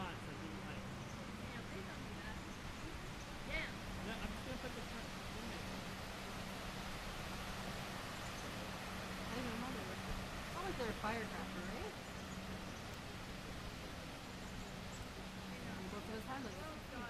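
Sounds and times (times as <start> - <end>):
faint distant voices: 0.0 - 17.0
low steady hum: 0.0 - 17.0
outdoor background noise: 0.0 - 17.0.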